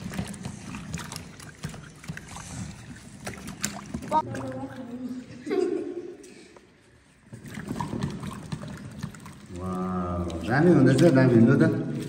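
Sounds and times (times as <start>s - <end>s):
water splashing and knocking: 0.0s - 5.1s, 7.2s - 12.0s
hands scrubbing tubers in water: 0.0s - 5.4s, 6.7s - 12.0s.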